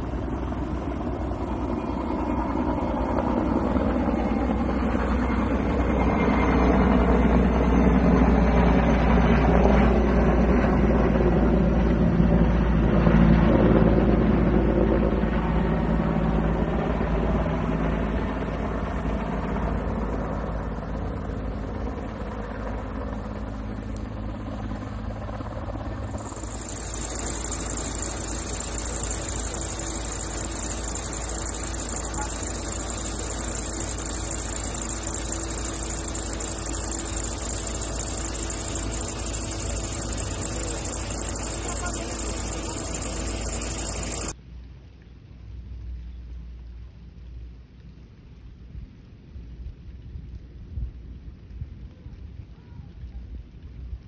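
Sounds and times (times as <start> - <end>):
steady high-pitched buzz: 0.0 - 10.6, 19.4 - 44.4
helicopter flying: 0.0 - 44.4.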